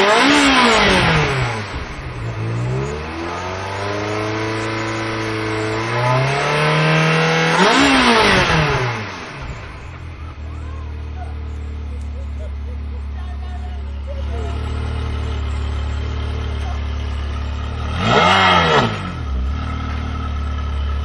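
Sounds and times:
car engine revving: 0.0s - 21.0s.

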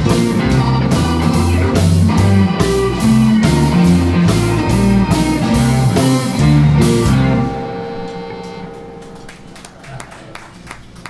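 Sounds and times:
blues band final chord ringing: 0.0s - 9.8s
scattered handclaps: 9.0s - 11.0s.

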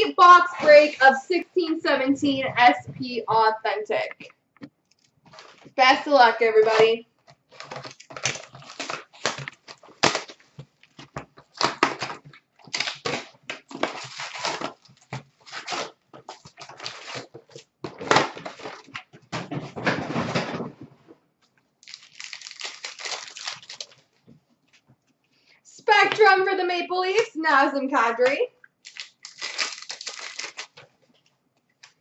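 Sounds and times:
cardboard box tearing: 7.6s - 10.4s, 11.5s - 17.3s
hissing crinkle: 21.8s - 24.2s.

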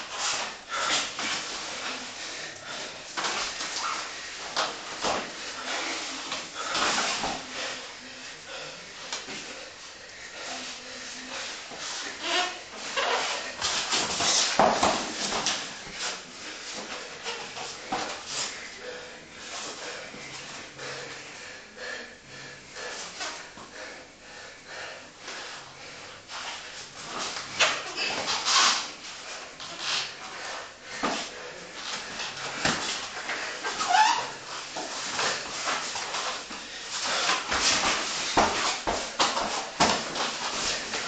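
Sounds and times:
heavy breathing: 0.1s - 14.6s, 15.2s - 41.0s
bodies scuffling on mats: 31.0s - 41.0s.

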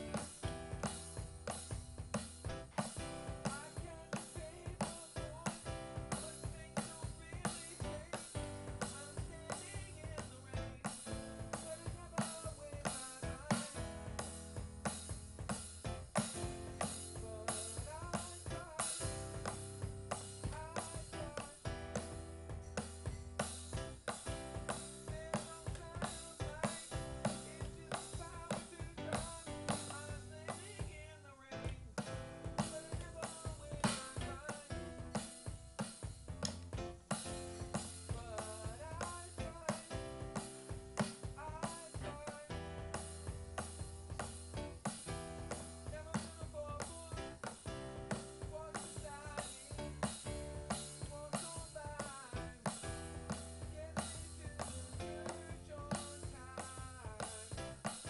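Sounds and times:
bass line: 0.0s - 12.2s, 13.2s - 35.6s, 36.2s - 57.9s
drum kit beat: 0.0s - 58.0s
keyboard chords: 0.0s - 58.0s.

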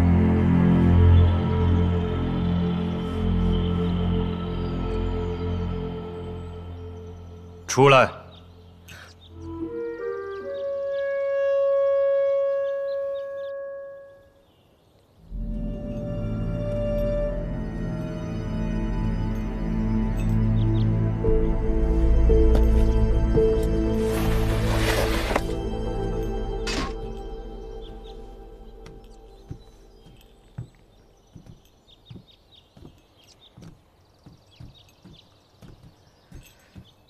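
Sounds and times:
low dark drone: 0.0s - 7.6s, 25.4s - 30.6s
background music: 0.0s - 14.5s, 15.2s - 31.8s
footsteps on hard floor: 28.8s - 37.0s.

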